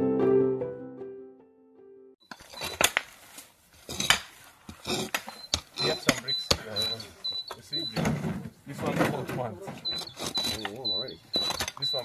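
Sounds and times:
spade digging into soil: 0:02.3 - 0:07.0, 0:09.9 - 0:12.0.

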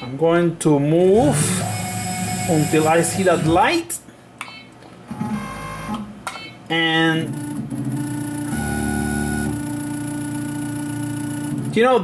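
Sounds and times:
milling machine axis whine: 0:01.2 - 0:03.6.

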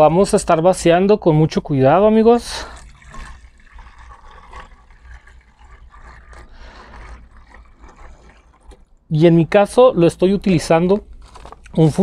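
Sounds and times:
liquid trickling into bottle: 0:02.3 - 0:09.1.

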